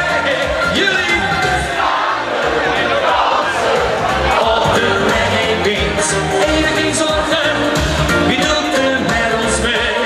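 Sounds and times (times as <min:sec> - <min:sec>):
reggae pop music over loudspeakers: 0:00.0 - 0:10.0.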